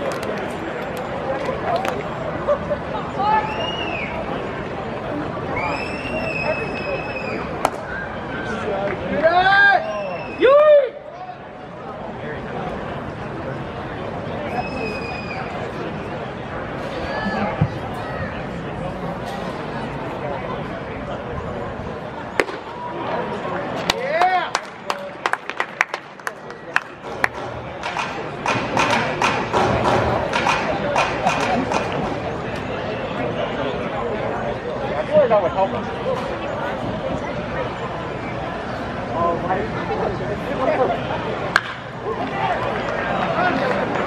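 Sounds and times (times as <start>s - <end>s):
scattered claps: 0.0s - 2.1s, 7.6s - 7.8s, 23.8s - 32.2s, 41.5s - 44.0s
crowd chatter: 0.0s - 44.0s
wooden bat hitting ball: 7.6s - 7.9s, 22.4s - 22.7s, 41.5s - 41.8s.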